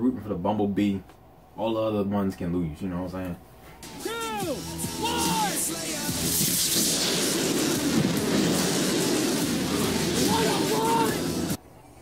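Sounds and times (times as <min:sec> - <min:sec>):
rocket motor hissing and rushing: 0:04.7 - 0:11.6.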